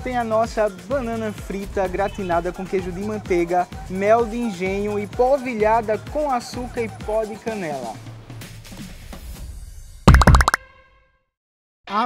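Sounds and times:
quick run of pops with ringing tone: 10.1 - 10.6.

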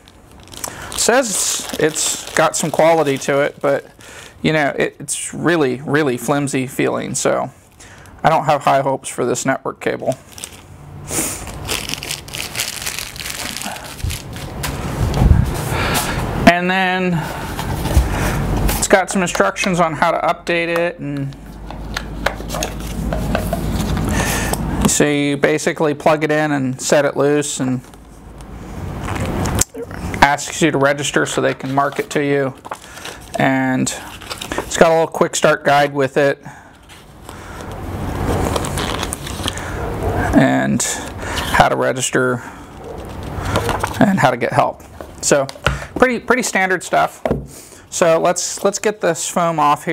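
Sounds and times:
paper rustling and crackling: 0.0 - 3.9, 11.3 - 16.2, 21.8 - 24.3, 31.2 - 33.4, 34.0 - 35.0, 38.2 - 39.8, 42.8 - 44.1
plastic bag crinkling: 0.0 - 4.0, 10.1 - 15.6, 38.2 - 39.7.

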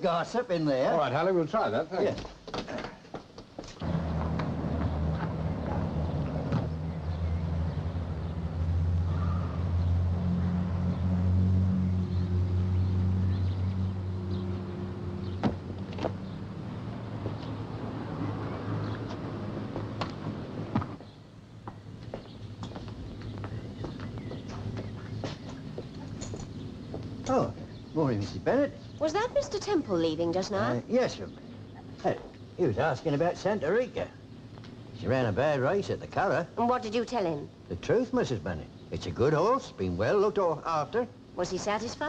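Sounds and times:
car engine driving off: 3.8 - 21.0.

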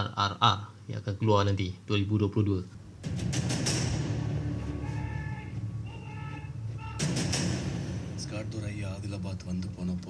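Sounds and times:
trailer music with held tones: 2.8 - 10.0
heavy boom: 7.0 - 8.4.

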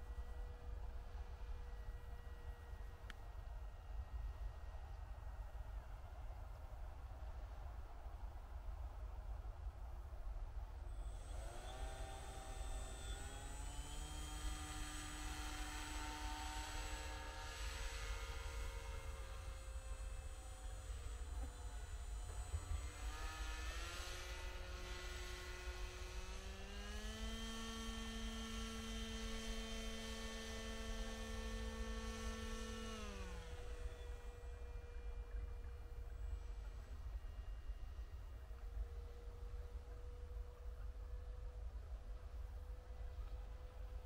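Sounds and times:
motor and propeller whine: 0.0 - 7.5, 10.6 - 44.0.

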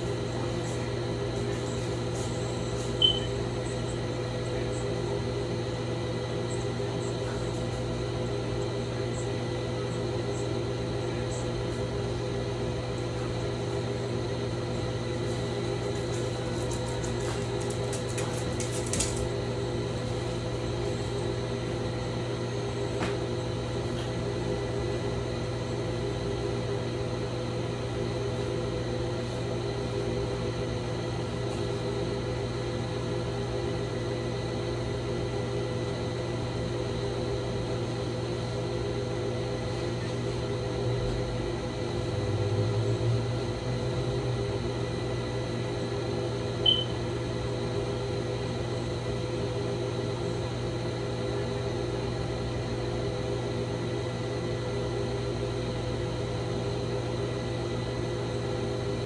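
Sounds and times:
steady mechanical hum: 0.0 - 59.0.

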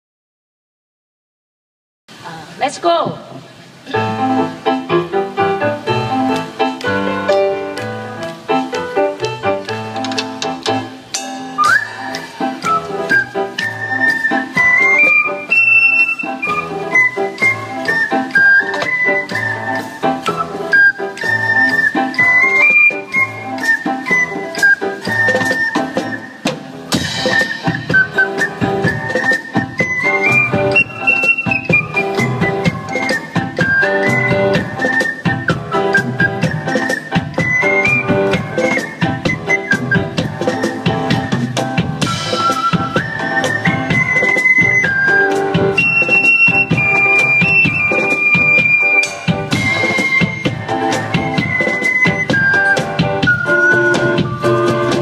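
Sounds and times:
hand drum: 3.9 - 55.0
whistle-like wind melody: 11.0 - 55.0.

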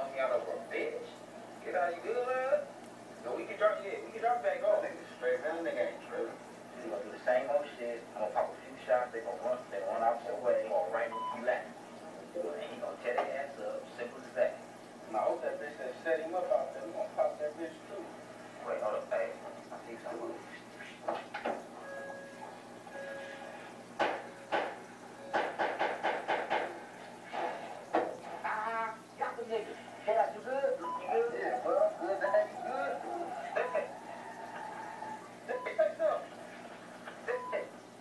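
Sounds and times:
short knocks or clatter: 24.0 - 26.8
indistinct voices: 26.6 - 36.5.

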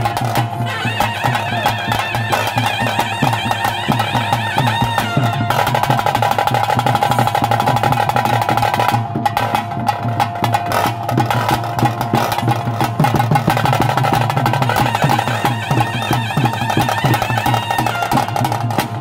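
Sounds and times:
wind instrument high note: 0.0 - 7.8, 14.6 - 19.0
fast drumming: 0.0 - 19.0.

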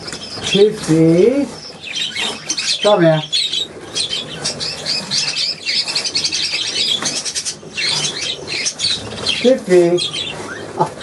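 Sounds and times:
budgerigars chattering and warbling: 0.0 - 11.0.

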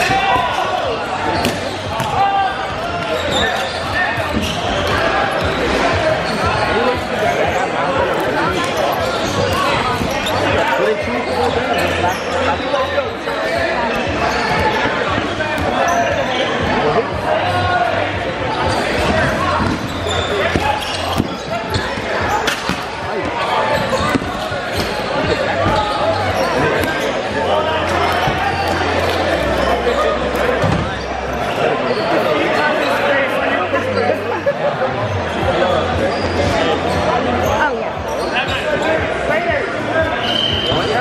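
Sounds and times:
crowd chatter: 0.0 - 41.0.

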